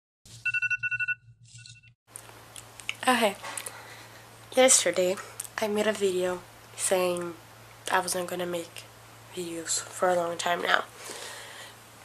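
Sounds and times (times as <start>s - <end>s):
phone alarm rapid beeping: 0.4s - 1.9s.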